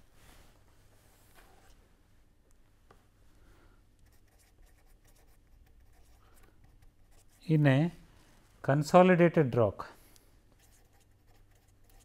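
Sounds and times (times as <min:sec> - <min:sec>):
pen scratching on paper: 0:10.6 - 0:12.0.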